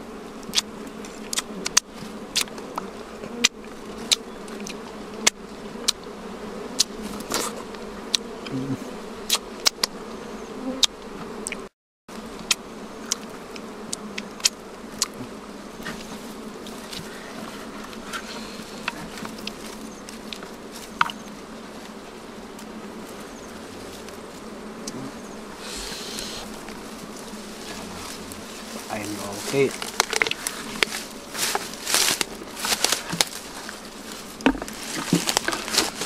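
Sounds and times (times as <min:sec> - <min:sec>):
bees buzzing: 0:00.0 - 0:36.0
honeycomb clicks and snaps: 0:00.4 - 0:06.1, 0:06.8 - 0:08.3, 0:12.4 - 0:15.2, 0:29.7 - 0:31.0.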